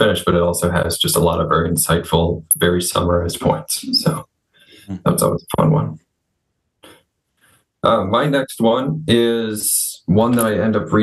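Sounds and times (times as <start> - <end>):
man saying uh: 0.0 - 4.2, 4.9 - 6.0, 7.8 - 11.0.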